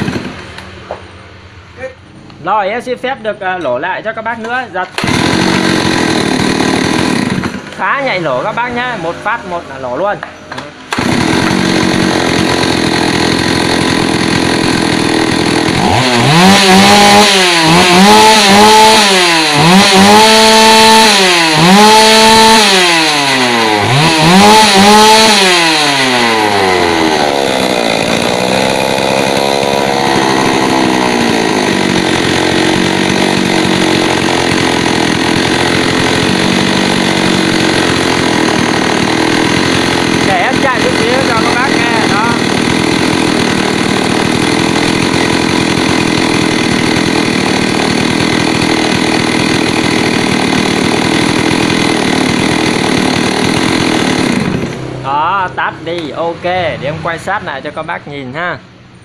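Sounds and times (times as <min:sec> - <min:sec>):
chainsaw engine revving and idling: 0:00.0 - 0:01.1, 0:04.0 - 0:57.5.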